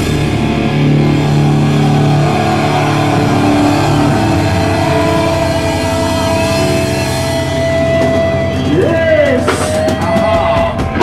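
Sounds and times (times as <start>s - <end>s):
steady high tone: 0.0s - 9.6s
electric guitars sustained chords: 0.0s - 11.0s.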